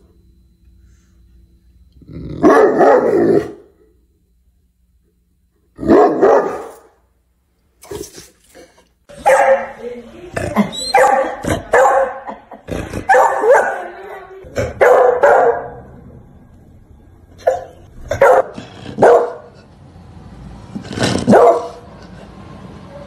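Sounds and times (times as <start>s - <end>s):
dog barking: 2.4s - 3.6s, 5.8s - 6.9s, 9.2s - 9.8s, 10.9s - 12.4s, 13.0s - 13.9s, 14.7s - 15.8s, 17.4s - 19.6s, 21.3s - 21.8s.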